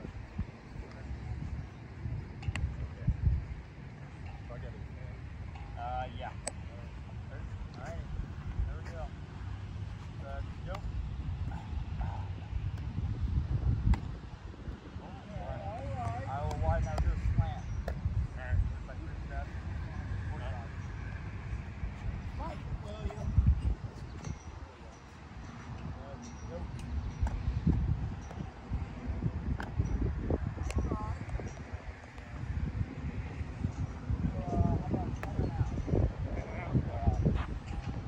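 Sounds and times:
wind buffeting microphone: 0.0 - 38.0
faint men's voices talking: 0.1 - 13.8, 14.8 - 29.8, 30.6 - 38.0.

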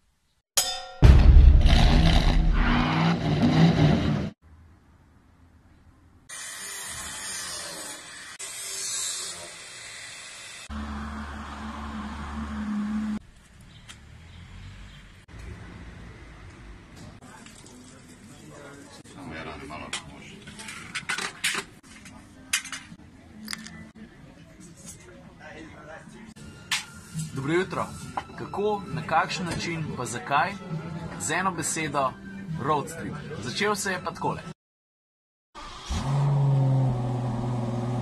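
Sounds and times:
car engine revving: 1.6 - 4.4, 10.6 - 13.2, 35.7 - 38.0.

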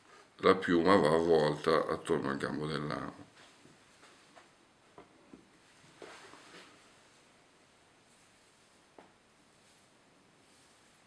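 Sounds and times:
soft feather rustle: 5.6 - 11.0.

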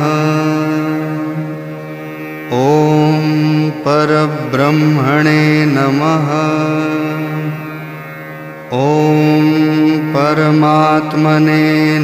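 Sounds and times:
man chanting a mantra: 0.0 - 1.5, 2.5 - 7.7, 8.7 - 12.0.

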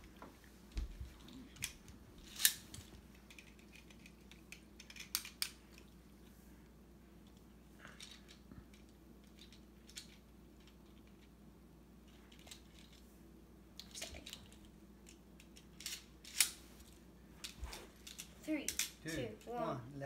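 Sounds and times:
plastic parts clicking together: 1.2 - 5.9.

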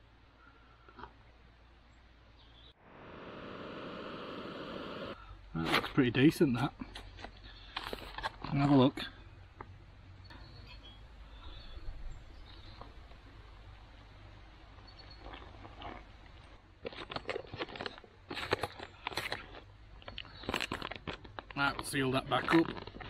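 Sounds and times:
foil pouch crinkling: 16.8 - 23.0.

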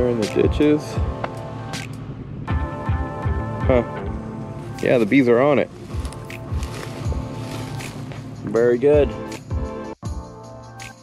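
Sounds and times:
sustained music chords: 0.0 - 10.9.

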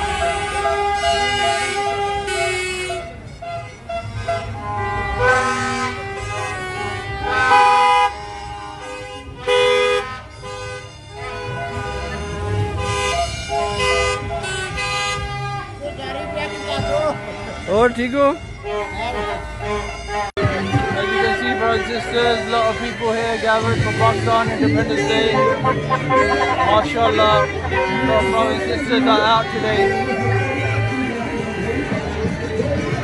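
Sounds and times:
car horns honking: 0.0 - 33.0.

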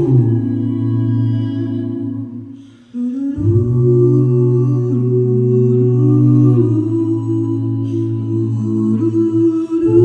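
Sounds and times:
a cappella group singing chords: 0.0 - 10.0.

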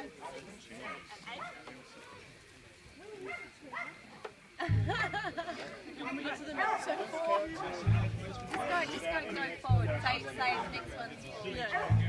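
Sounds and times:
overlapping voices: 4.4 - 12.0.

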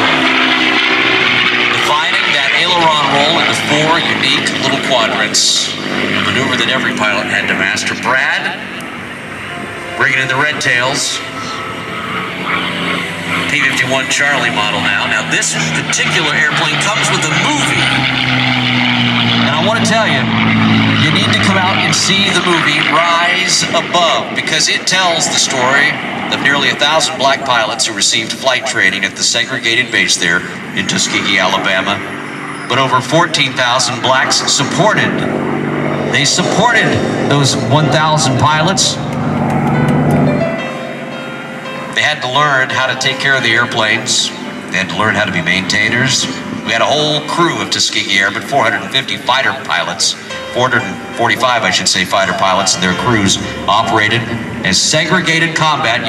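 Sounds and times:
propeller plane engine drone: 0.0 - 56.0.

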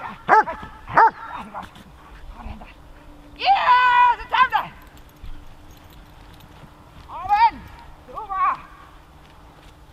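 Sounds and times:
dog barking loudly: 0.0 - 1.3.

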